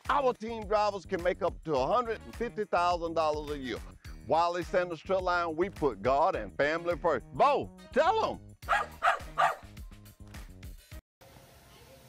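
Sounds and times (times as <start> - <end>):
background music with steady beat: 0.0 - 11.0
small dog barking: 8.7 - 9.7.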